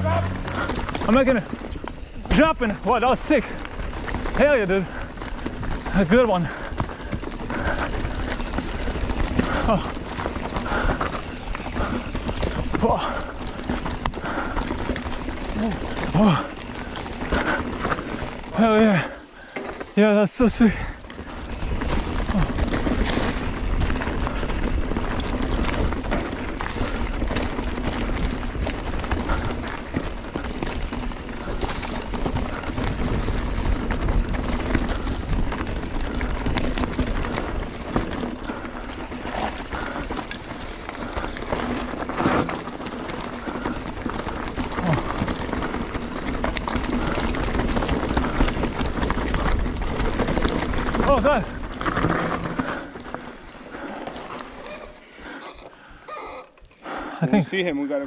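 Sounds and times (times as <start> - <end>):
tyre and wind noise: 0.0 - 57.7
bike clicks and rattles: 0.0 - 57.9.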